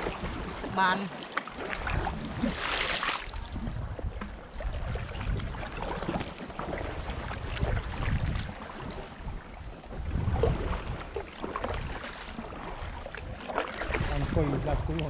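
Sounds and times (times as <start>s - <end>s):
paddle splashing in water: 0.0s - 15.0s
wind buffeting microphone: 1.8s - 15.0s.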